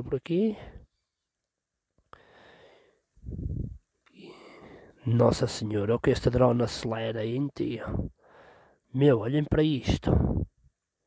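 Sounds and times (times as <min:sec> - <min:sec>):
man breathing close to microphone: 0:02.1 - 0:05.0, 0:07.9 - 0:08.9.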